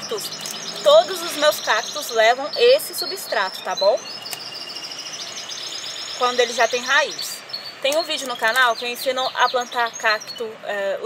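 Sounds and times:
bird trilling: 0.0 - 11.0.

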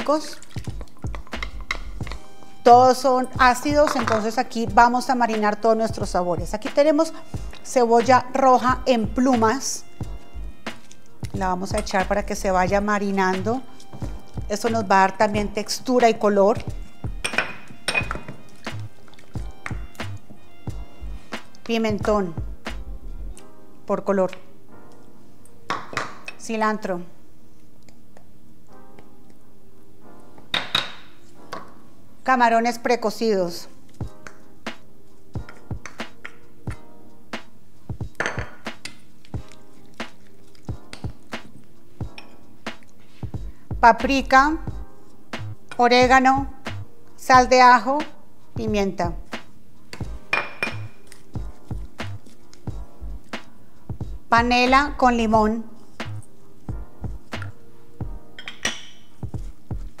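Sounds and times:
background music: 0.0 - 60.0.

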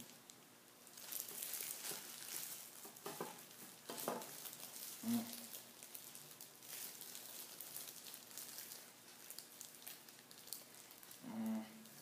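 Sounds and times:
plastic gloves crinkling: 0.0 - 12.0.

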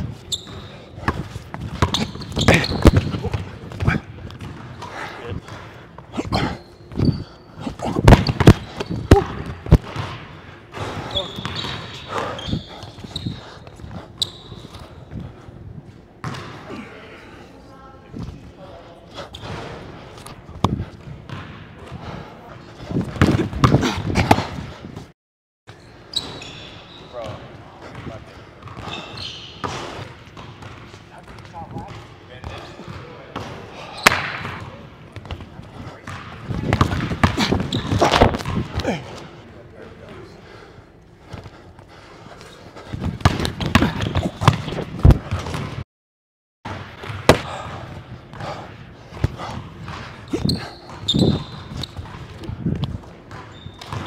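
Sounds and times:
basketball bouncing on wooden floor: 43.0 - 45.8, 49.2 - 54.0.

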